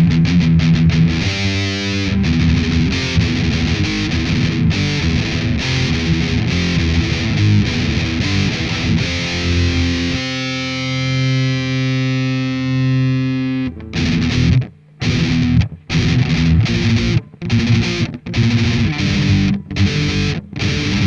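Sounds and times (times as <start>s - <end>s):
distorted electric guitar metal riff: 0.0s - 21.0s.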